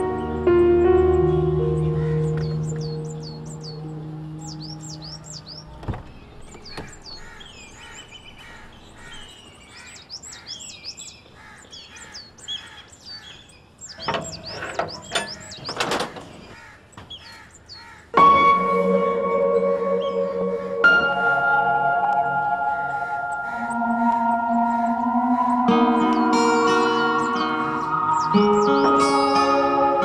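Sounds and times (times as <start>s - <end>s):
soft music: 0.0s - 5.8s, 18.2s - 30.0s
birds chirping: 0.0s - 30.0s
knocks and rustles: 5.8s - 7.0s, 14.0s - 17.2s.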